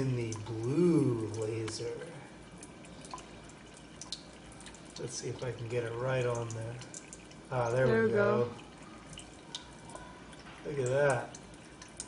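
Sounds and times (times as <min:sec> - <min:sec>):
small drip ticks: 0:00.0 - 0:07.8, 0:08.5 - 0:12.0
water trickling into a tray: 0:00.0 - 0:12.0.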